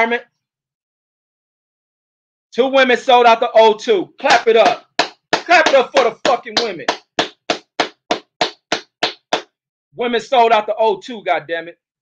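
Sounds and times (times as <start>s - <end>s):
person clapping hands: 4.2s - 9.5s.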